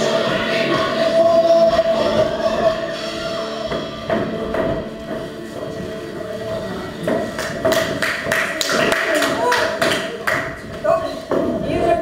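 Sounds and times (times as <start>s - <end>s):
faint dance music: 0.0s - 12.0s
shoes tapping on wooden floor: 3.7s - 12.0s.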